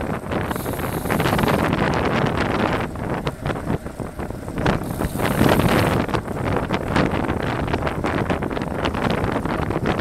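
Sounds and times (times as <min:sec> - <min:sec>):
bike tyres hissing on asphalt: 0:00.0 - 0:09.9
wind buffeting microphone: 0:00.0 - 0:10.0.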